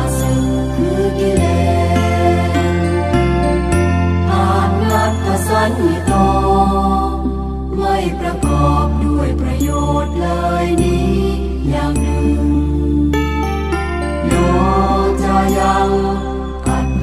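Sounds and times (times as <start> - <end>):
instrumental music: 0.0 - 17.0
chanting: 14.2 - 17.0.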